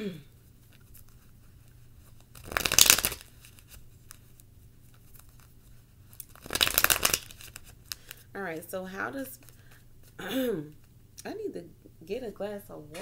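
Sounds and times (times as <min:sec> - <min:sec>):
cards being shuffled: 0:00.6 - 0:08.2.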